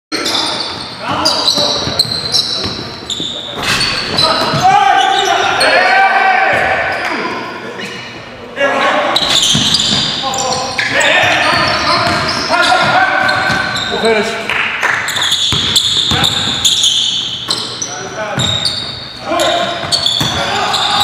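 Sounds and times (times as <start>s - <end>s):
sneakers squeaking: 0.1s - 7.0s, 8.9s - 21.0s
players calling out: 0.2s - 21.0s
basketball bouncing on wooden floor: 11.2s - 13.8s, 15.3s - 16.6s, 19.7s - 20.5s.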